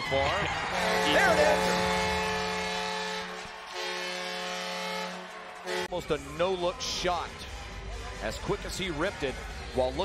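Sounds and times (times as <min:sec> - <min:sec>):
crowd cheering: 0:00.0 - 0:06.0
arena goal horn: 0:00.6 - 0:06.0.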